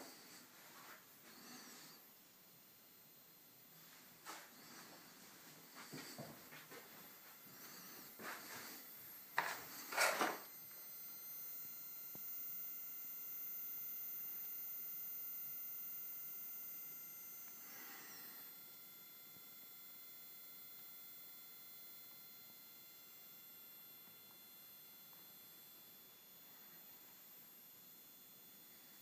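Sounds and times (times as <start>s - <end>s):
high-pitched ballast whine: 0.0s - 29.0s.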